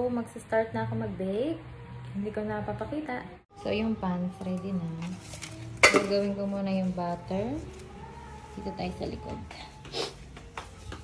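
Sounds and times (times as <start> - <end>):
metal kitchenware clink: 5.8 - 6.3.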